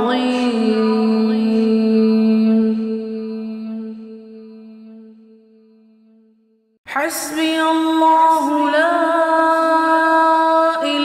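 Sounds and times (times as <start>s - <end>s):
long chanted vocal note: 0.0s - 5.2s.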